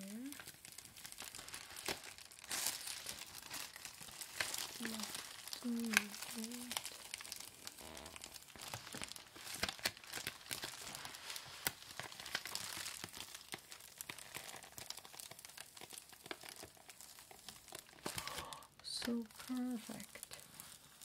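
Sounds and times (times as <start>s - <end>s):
plastic mailer crinkling: 0.0s - 21.0s.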